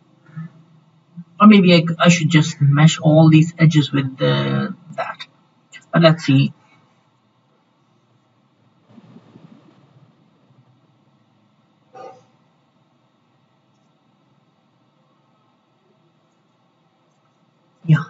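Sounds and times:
faint irregular low noise: 0:00.0 - 0:18.0.

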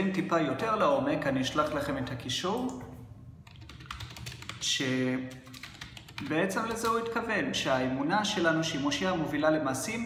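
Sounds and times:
keyboard typing clicks: 0:02.6 - 0:04.6, 0:05.4 - 0:07.1.

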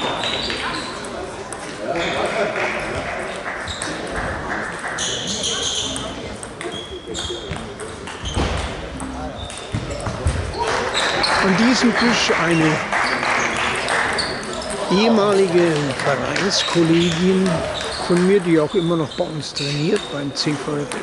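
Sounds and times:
murmur of voices: 0:00.0 - 0:21.0
table tennis balls clicking: 0:02.9 - 0:12.7.

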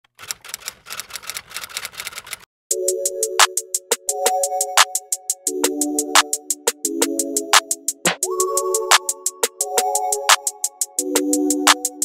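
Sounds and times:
typewriter key clicks: 0:00.1 - 0:02.4.

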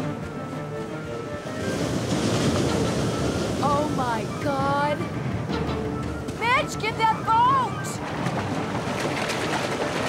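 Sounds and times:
surf: 0:00.0 - 0:10.0
wind: 0:00.0 - 0:10.0.

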